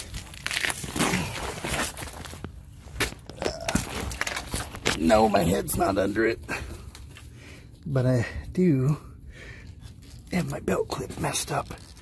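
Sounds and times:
scuffs and rustles on concrete: 0.0 - 7.9.

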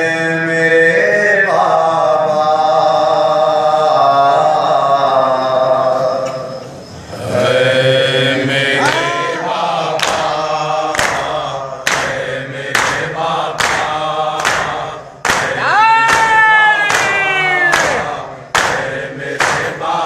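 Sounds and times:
man chanting a lament: 7.2 - 10.6.

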